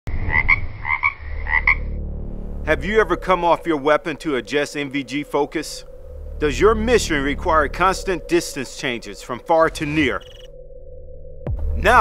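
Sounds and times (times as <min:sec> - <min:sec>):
frog croaking: 0:00.2 - 0:02.0, 0:03.1 - 0:10.6
low steady drone: 0:01.2 - 0:12.0.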